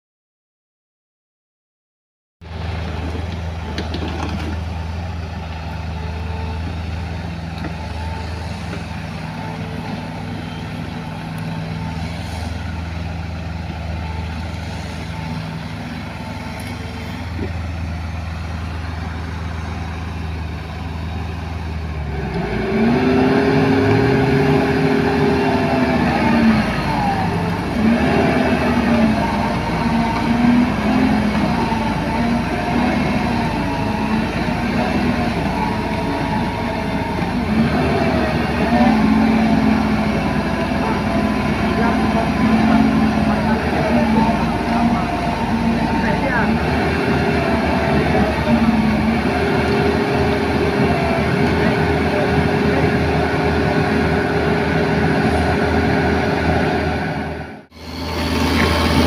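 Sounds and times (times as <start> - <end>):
heavy machinery diesel engines revving: 2.4 - 59.0.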